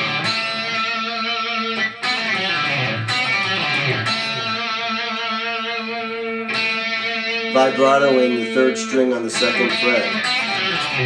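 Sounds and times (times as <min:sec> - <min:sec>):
electric guitar riff: 0:00.0 - 0:11.0.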